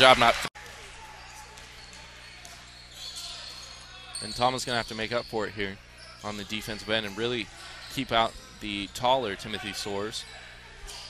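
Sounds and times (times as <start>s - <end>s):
gym crowd noise: 0.0s - 11.0s.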